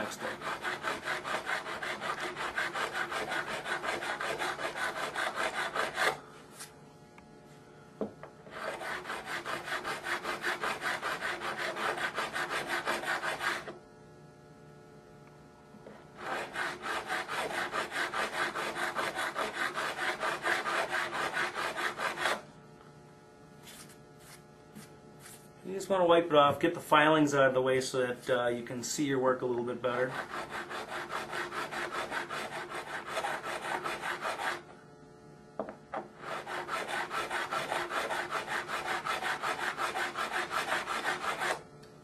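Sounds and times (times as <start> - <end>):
file rasping on metal fret: 0.0 - 6.2, 8.5 - 13.8, 16.2 - 22.4, 29.9 - 34.7, 36.2 - 41.6.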